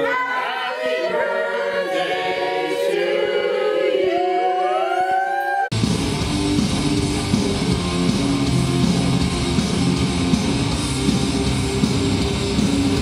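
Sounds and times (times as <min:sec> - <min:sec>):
group singing unaccompanied: 0:00.0 - 0:05.2
hard rock music: 0:05.7 - 0:13.0.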